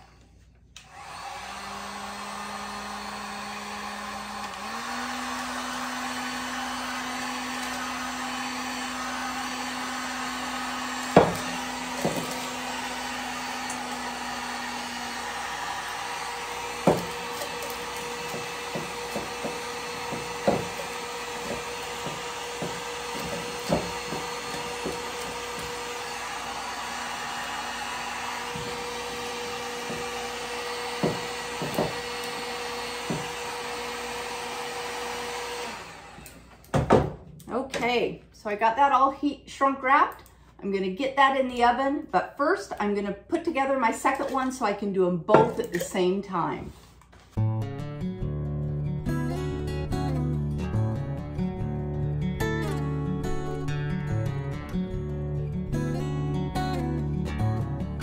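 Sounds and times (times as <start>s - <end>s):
heat gun blowing: 0.0s - 36.9s.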